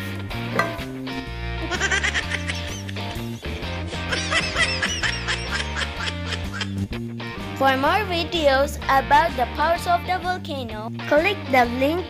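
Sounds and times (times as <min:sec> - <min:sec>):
playful music with bouncy bass: 0:00.0 - 0:12.0.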